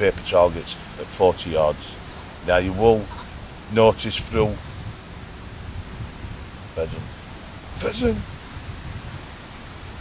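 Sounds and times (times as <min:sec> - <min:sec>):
wind on microphone: 0:00.0 - 0:10.0
spoken word syllable: 0:06.8 - 0:07.1, 0:07.8 - 0:08.3.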